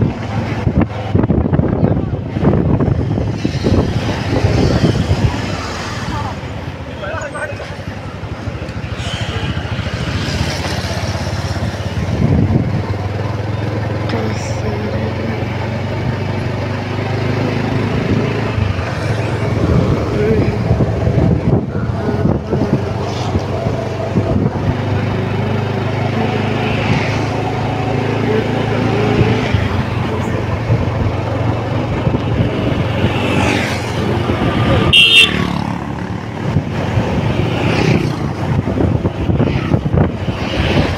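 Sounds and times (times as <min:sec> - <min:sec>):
road and wind noise: 0:00.0 - 0:40.9.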